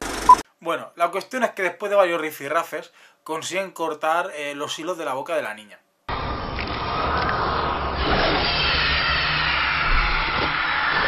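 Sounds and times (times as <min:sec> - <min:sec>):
low rumble: 0:06.1 - 0:10.5.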